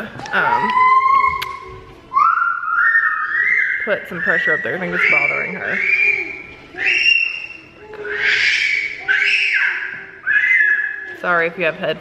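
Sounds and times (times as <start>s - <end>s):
baby squealing: 2.2s - 11.2s.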